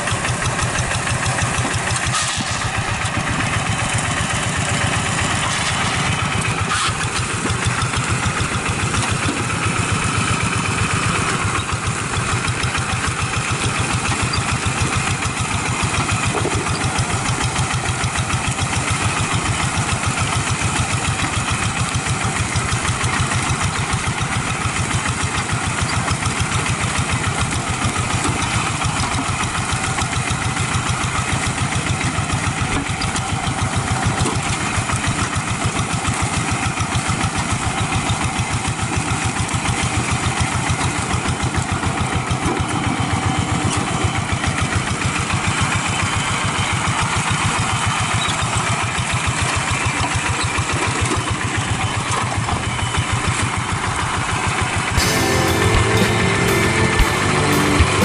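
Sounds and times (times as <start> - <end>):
diesel engine running steadily: 0.0 - 58.0.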